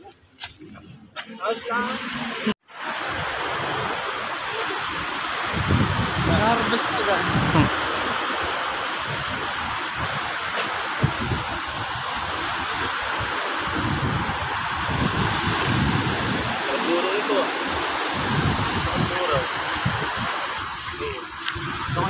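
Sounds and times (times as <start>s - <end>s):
sea water washing shoreline: 0.0s - 22.0s.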